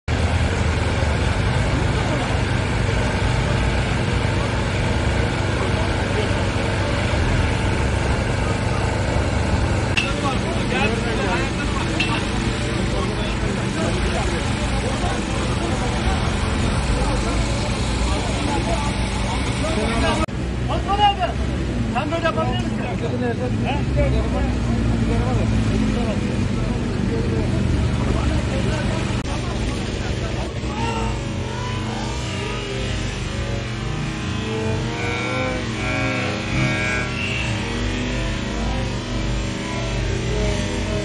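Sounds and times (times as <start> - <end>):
indistinct voices: 0.1 - 41.0
low engine drone: 0.1 - 41.0.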